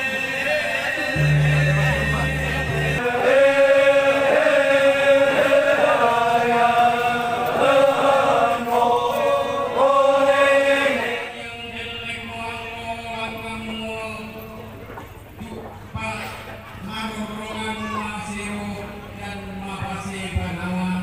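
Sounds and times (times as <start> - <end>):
person chanting held notes: 0.0 - 14.4.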